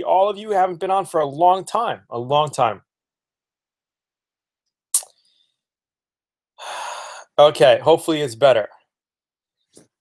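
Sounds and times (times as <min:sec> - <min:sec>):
man sighing breath: 0:06.6 - 0:07.4.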